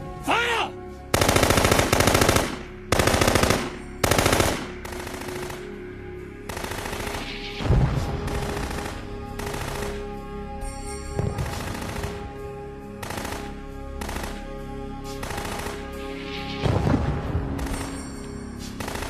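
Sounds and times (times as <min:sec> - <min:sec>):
music drone: 0:00.0 - 0:19.0
automatic gunfire: 0:01.2 - 0:05.8, 0:06.5 - 0:07.4, 0:08.3 - 0:10.1, 0:11.3 - 0:12.4, 0:13.0 - 0:14.5, 0:15.1 - 0:16.0, 0:18.8 - 0:19.0.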